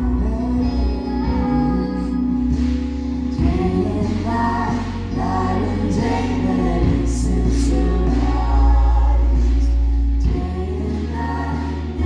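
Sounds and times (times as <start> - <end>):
low bass notes: 0.0 - 12.0
worship band playing: 0.0 - 12.0
voices singing together: 3.3 - 12.0.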